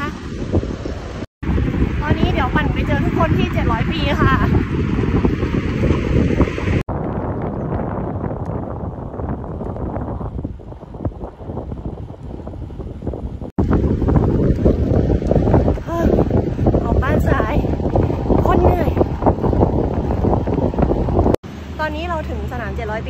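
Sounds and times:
wind rushing over microphone: 0.0 - 23.0.

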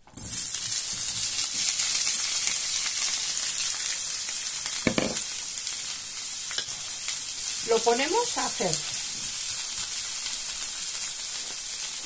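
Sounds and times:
peppers sizzling in frying pan: 0.0 - 12.0.

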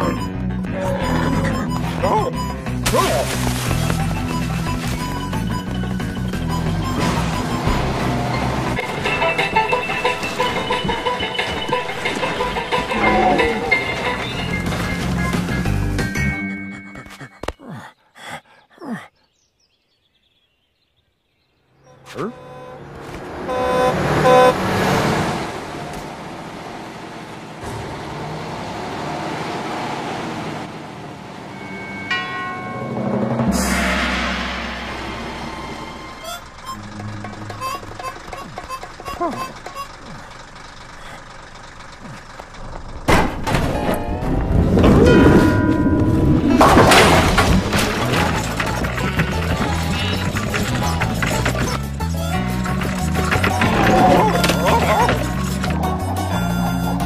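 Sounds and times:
cartoon background music: 0.0 - 17.2, 35.4 - 39.9, 48.0 - 57.0
wordless character voices: 17.1 - 19.1
cartoon sound effects: 36.1 - 40.2, 53.6 - 57.0.

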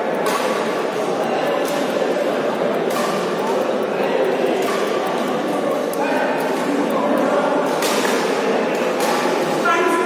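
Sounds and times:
chatter of many voices echoing: 0.0 - 10.0.

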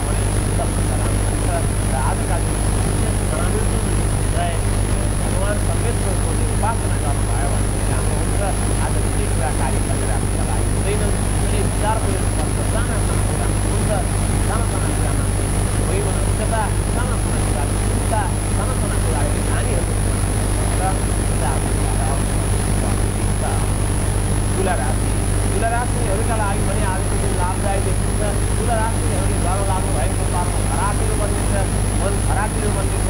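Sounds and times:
loud low hum: 0.0 - 33.0
man talking: 0.0 - 33.0.

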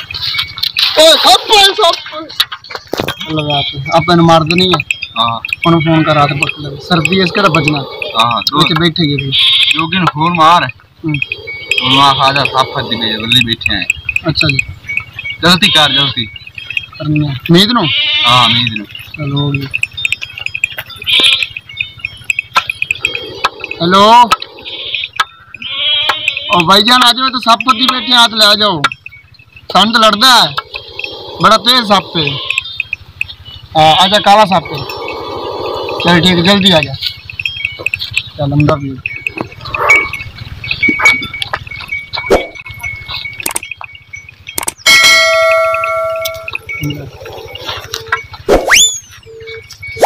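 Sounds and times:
rapid high-pitched chirping: 0.0 - 50.0
livestock bleat: 6.0 - 10.0, 11.2 - 13.4, 17.8 - 18.8, 21.0 - 21.5, 23.0 - 26.9, 27.5 - 28.4, 30.6 - 32.8, 33.8 - 36.4
click and bell ding: 40.8 - 47.0.

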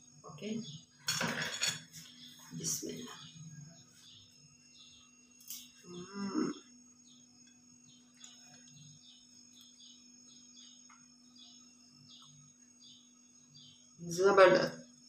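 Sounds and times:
steady low hum: 0.0 - 15.0
faint high chirps: 1.9 - 15.0.

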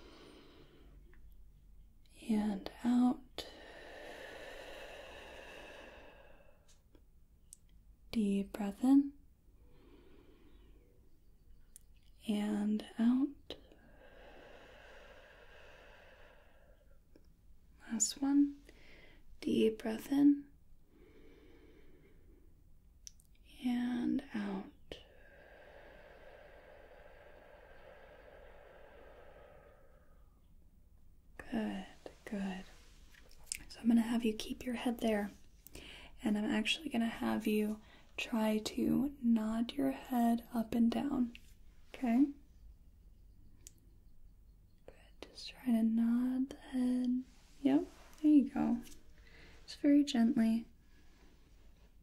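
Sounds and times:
woman exhaling slowly: 3.4 - 6.7, 13.8 - 17.0, 25.0 - 30.5
person breathing out: 3.5 - 6.7, 13.8 - 17.0, 25.0 - 30.4, 49.2 - 49.7.

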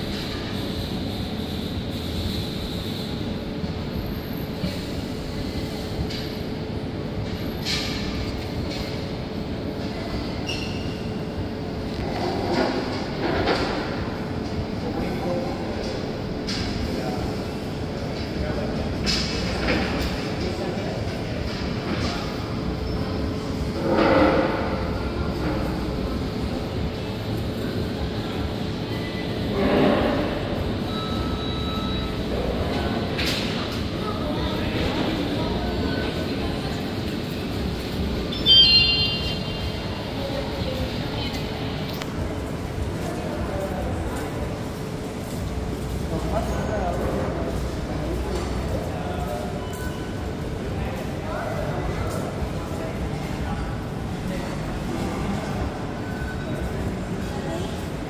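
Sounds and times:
indoor crowd rumble and hum: 0.0 - 58.0
people talking nearby: 32.1 - 58.0.

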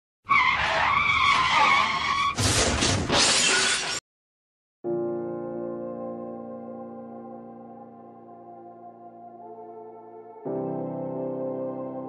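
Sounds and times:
tyres screeching in a skid: 0.2 - 3.9
car crash with shattering: 0.8 - 4.0.

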